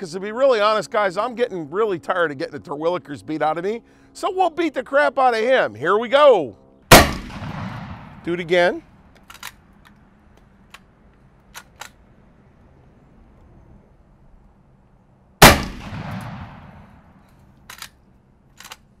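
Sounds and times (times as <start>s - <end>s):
loud shotgun shot with echo: 6.9s - 8.3s, 15.4s - 17.0s.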